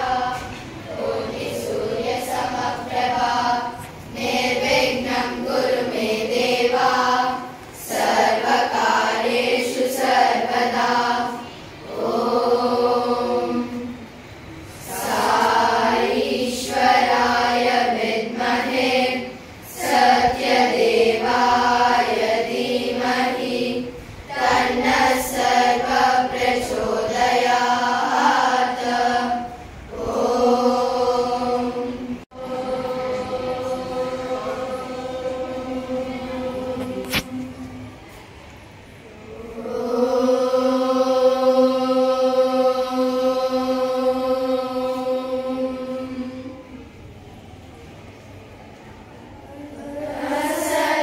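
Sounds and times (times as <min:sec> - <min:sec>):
girls chanting a prayer in unison: 0:00.0 - 0:47.2, 0:48.0 - 0:51.0.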